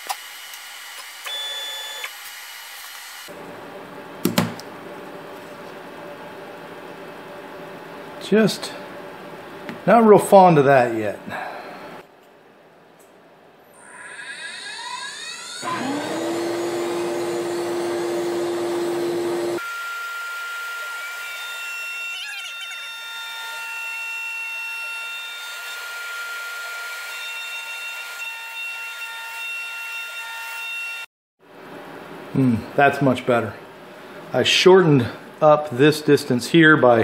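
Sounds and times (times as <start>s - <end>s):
router cutting wood: 0.0s - 3.3s, 13.8s - 31.0s
router spindle whine: 0.0s - 3.3s, 13.8s - 23.7s
shop vacuum humming: 13.8s - 21.4s.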